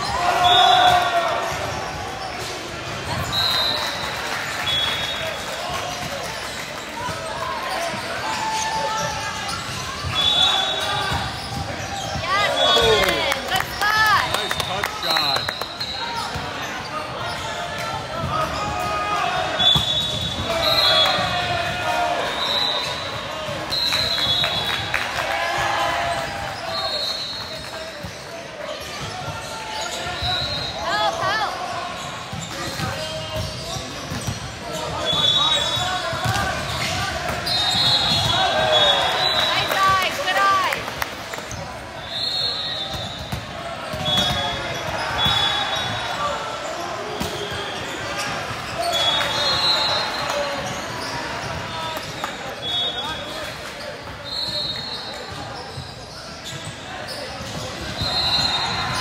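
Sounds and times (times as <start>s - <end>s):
voices echoing in a hall: 0.0s - 59.0s
volleyball hits and knocks: 42.9s - 45.9s.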